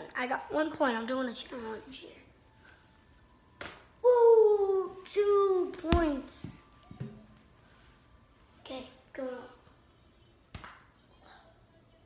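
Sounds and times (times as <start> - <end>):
baseball smack: 3.6 - 3.9, 10.5 - 10.9.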